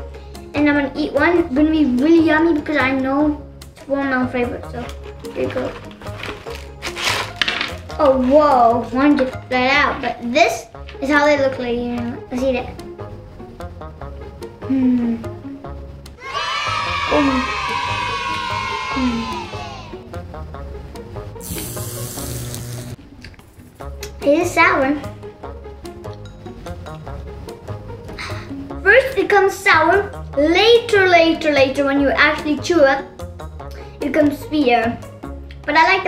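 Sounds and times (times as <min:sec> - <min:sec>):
plastic bag crinkling: 0:04.8 - 0:08.0
background music with low beat: 0:11.6 - 0:16.2, 0:16.9 - 0:24.3, 0:25.0 - 0:28.9, 0:32.1 - 0:35.7.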